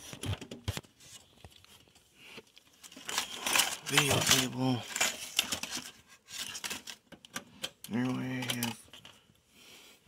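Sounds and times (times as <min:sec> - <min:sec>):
rustling scrape: 0:02.8 - 0:07.0
cable clicks and knocks: 0:06.5 - 0:09.2.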